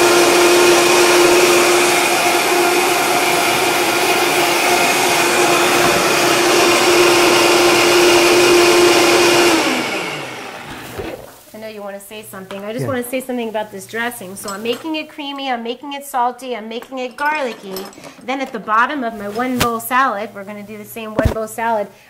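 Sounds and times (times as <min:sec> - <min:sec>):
electric blender running: 0:00.0 - 0:11.2.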